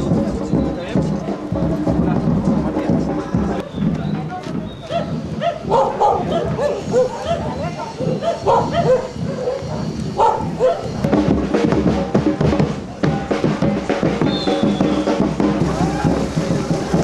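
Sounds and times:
small dog yapping: 4.9 - 11.0.

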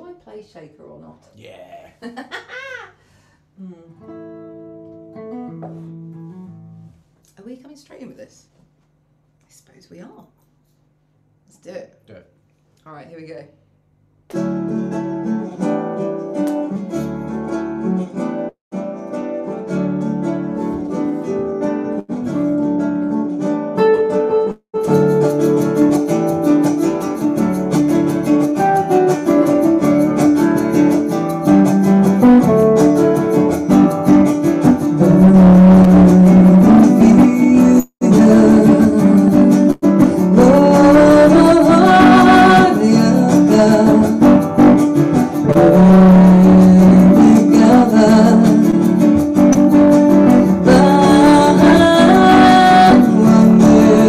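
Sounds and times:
electric guitar playing: 4.0 - 7.0, 14.3 - 54.0
woman singing: 36.9 - 44.3, 45.5 - 48.8, 50.6 - 54.0.

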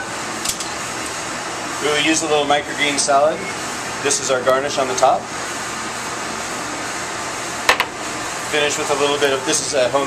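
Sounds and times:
ventilation fan rushing: 0.0 - 10.0.

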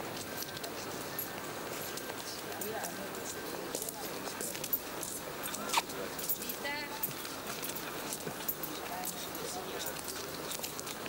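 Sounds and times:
footsteps on stone paving: 0.0 - 11.0
murmur of distant voices: 0.0 - 11.0.

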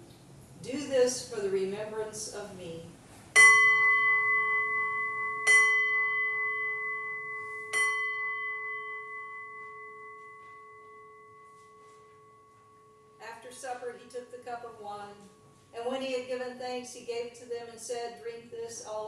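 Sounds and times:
altar bell ringing: 3.4 - 13.2.

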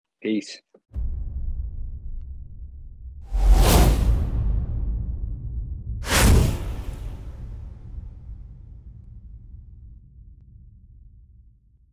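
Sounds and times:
cinematic whoosh with bass hit: 1.0 - 9.8
steady low rumble: 1.0 - 11.9.

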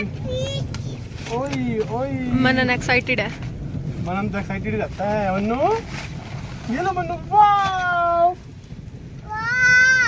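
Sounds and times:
toddler shouting: 0.2 - 1.0, 9.2 - 10.0.

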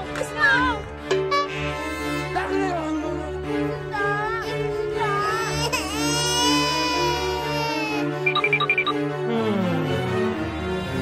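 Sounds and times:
high-pitched crying wail: 5.3 - 8.2
background music with bass pulse: 7.6 - 11.0.

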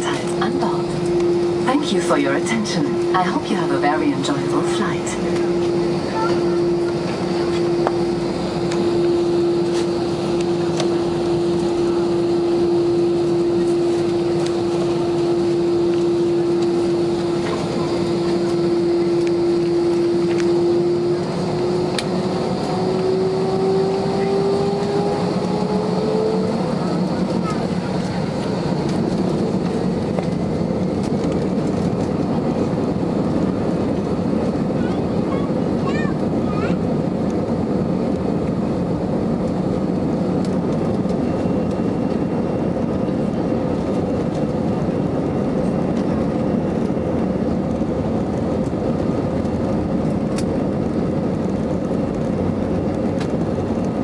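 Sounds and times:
aircraft cabin noise: 0.0 - 54.0
jet engine whine: 0.0 - 54.0.

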